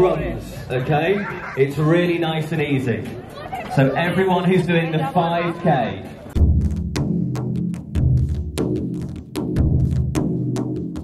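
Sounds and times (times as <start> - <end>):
bass drum beats: 6.4 - 11.0.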